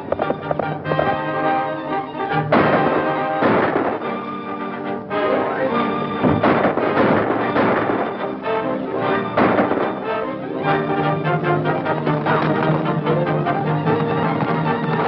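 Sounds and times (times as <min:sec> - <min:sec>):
orchestral music with brass: 0:00.0 - 0:15.0.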